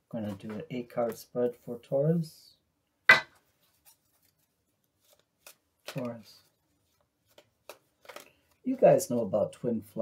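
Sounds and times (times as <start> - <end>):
cards shuffling flutter: 3.6 - 8.6.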